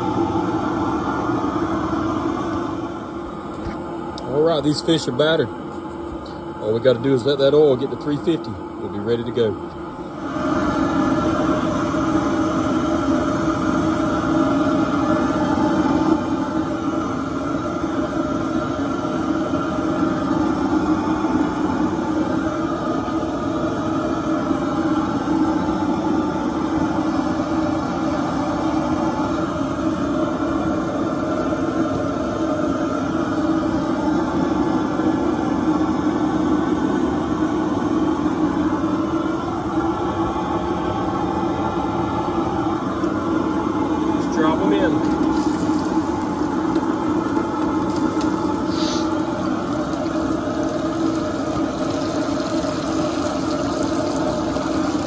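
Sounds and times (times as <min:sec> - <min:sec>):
gas burner roaring: 0:00.0 - 0:55.0.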